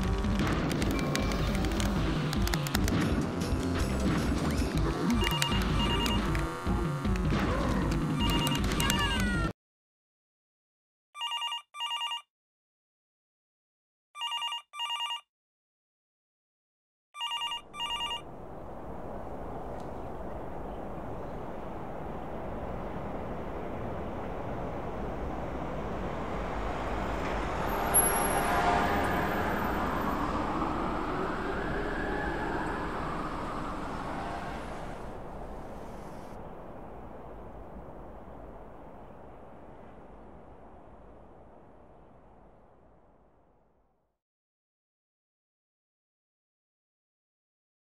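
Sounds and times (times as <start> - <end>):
city traffic noise: 0.0 - 9.5, 17.2 - 43.2
phone ringtone: 5.2 - 6.6, 8.2 - 9.2, 11.2 - 12.3, 14.2 - 15.3, 17.2 - 18.3.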